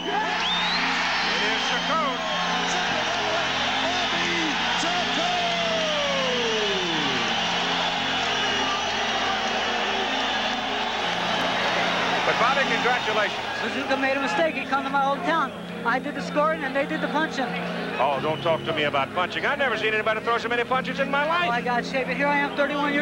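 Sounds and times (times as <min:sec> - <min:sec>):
arena crowd cheering: 0:00.0 - 0:18.1
individual shouts and whoops: 0:03.8 - 0:09.4
long falling yell: 0:04.0 - 0:10.8.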